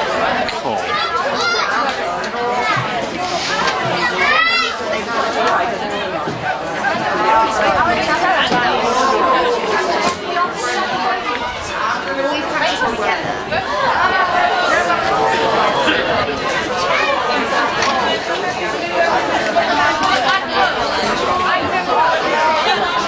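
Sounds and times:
spectators chattering and calling out: 0.0s - 23.0s.

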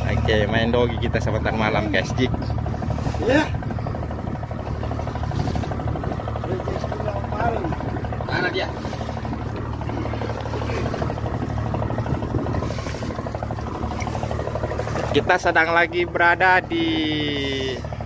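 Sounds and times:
boat engine droning: 0.0s - 18.0s.

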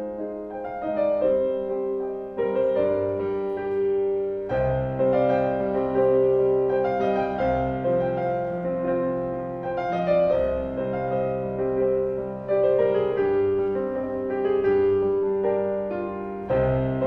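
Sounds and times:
slow solo piano piece: 0.0s - 17.0s.

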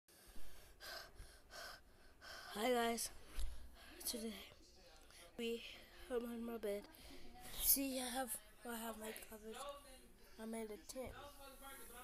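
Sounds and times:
breaths close to microphone: 0.1s - 6.1s.

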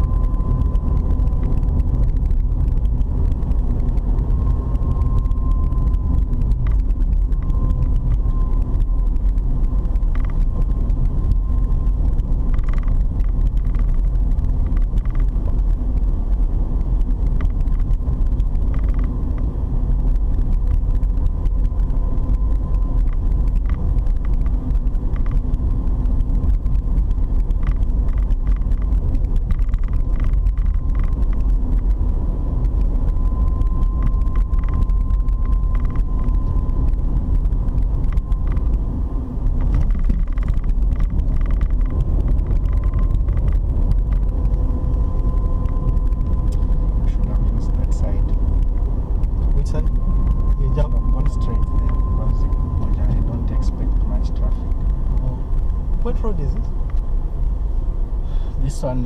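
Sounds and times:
car engine and tyres rumbling: 0.0s - 59.0s
faint thin whine: 0.0s - 59.0s.

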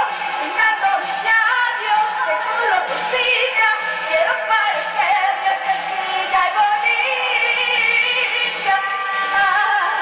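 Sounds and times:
woman singing into microphone: 0.0s - 10.0s.

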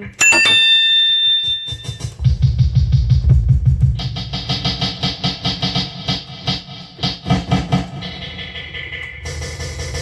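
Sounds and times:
electronic bell tone: 0.2s - 2.2s.

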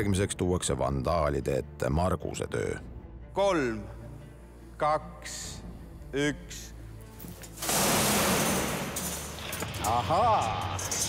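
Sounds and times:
metal bin crashing onto floor: 7.6s - 9.3s.

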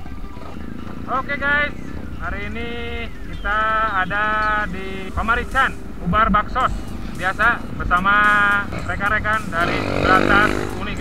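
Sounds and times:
motorcycle engines running: 0.0s - 11.0s
person talking: 1.1s - 11.0s.

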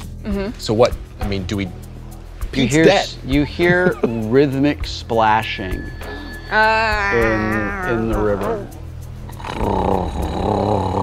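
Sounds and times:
music: 0.0s - 11.0s
guttural creature growl: 7.1s - 8.8s.

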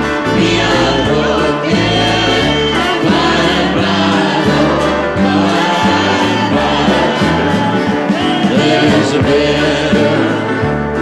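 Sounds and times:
band accompaniment: 0.0s - 11.0s
bass notes: 0.0s - 11.0s
group singing gospel in harmony: 0.0s - 11.0s.

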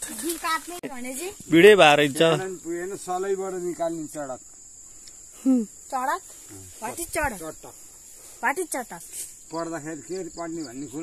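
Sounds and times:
people talking: 0.0s - 4.2s, 5.4s - 7.7s, 8.4s - 9.0s
crickets trilling: 0.0s - 11.0s.

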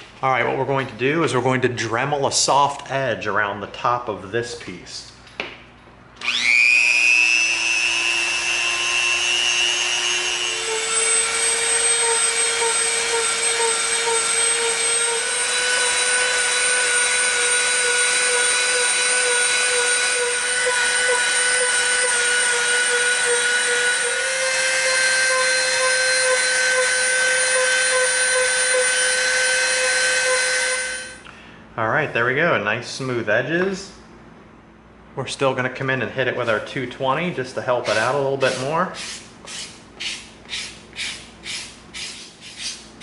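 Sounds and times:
rotary tool sanding foam: 7.2s - 31.1s, 37.8s - 43.0s
sandpaper scratching foam: 37.9s - 43.0s.

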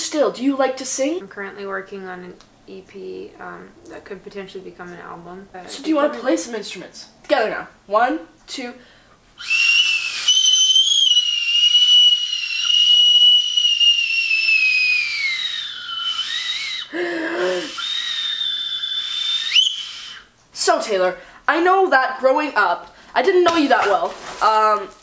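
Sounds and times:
whistle upward squeak: 9.4s - 16.9s, 17.6s - 20.3s
toy whistles blowing: 9.4s - 20.3s.

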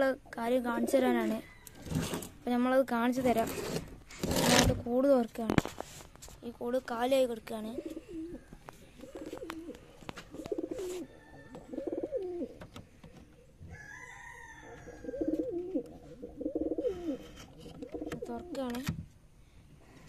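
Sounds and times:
pigeon cooing: 7.7s - 12.6s, 13.7s - 18.6s.

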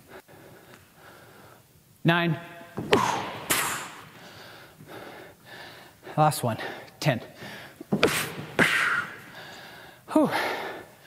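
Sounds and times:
heavy breathing: 0.0s - 1.7s, 2.9s - 11.0s
man exhaling forcefully: 2.9s - 4.7s, 8.0s - 9.8s.

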